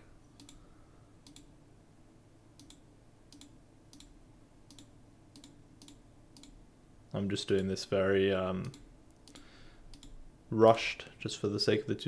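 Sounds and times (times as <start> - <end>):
computer mouse clicks: 0.4 - 0.6, 1.2 - 1.5, 2.6 - 6.6, 8.6 - 10.2.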